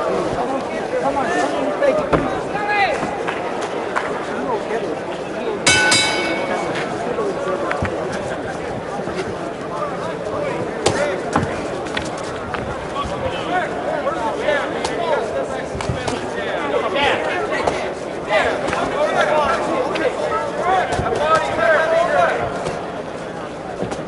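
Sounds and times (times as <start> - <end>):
boxing ring bell: 5.7 - 6.9.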